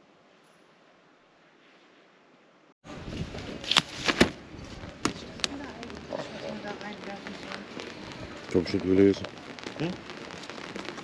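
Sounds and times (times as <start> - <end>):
umbrella snapping open: 3.6 - 4.4.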